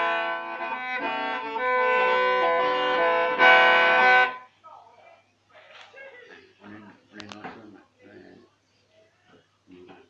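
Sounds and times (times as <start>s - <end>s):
mouth organ chord: 0.0s - 4.4s.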